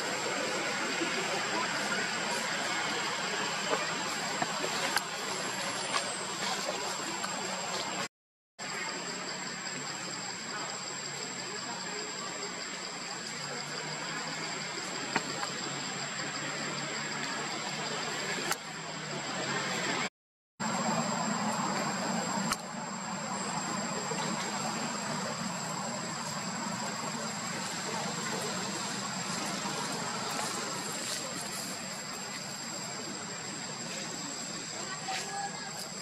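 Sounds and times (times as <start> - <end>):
outdoor background noise: 0.0 - 36.0.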